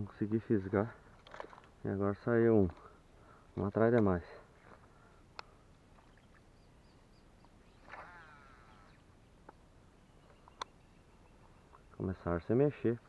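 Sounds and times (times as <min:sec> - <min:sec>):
faint falling bird call: 0:07.4 - 0:09.6
faint high chirps: 0:10.0 - 0:12.0.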